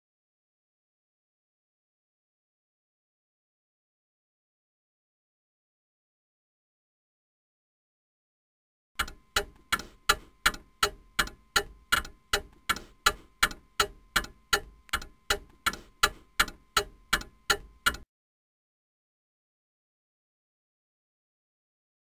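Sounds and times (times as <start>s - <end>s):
clock ticking: 9.0s - 18.0s.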